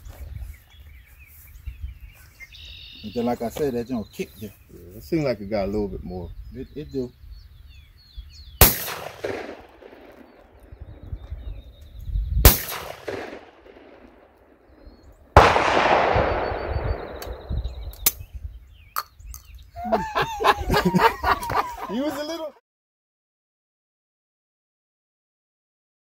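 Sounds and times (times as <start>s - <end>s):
shotgun shots with echo: 8.6s - 11.0s, 12.4s - 18.2s.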